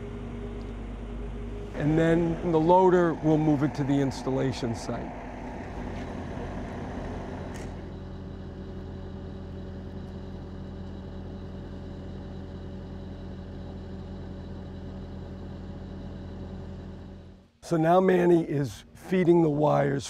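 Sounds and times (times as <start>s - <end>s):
diesel engine idling: 0.0s - 19.9s.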